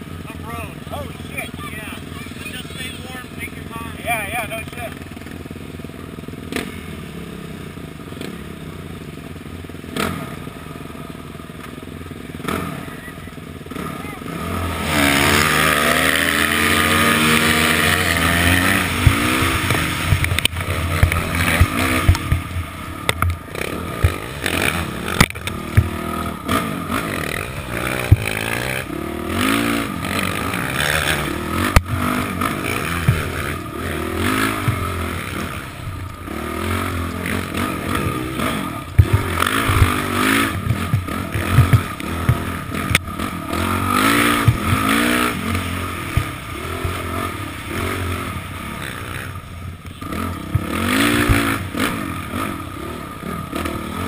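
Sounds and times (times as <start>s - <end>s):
dirt bike engine revving: 0.0s - 54.0s
knocks and clatter: 32.8s - 33.5s, 38.9s - 43.1s.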